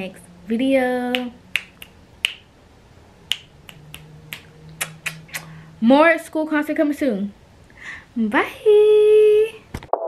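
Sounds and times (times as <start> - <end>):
finger snaps: 1.1 - 2.4, 3.3 - 5.5.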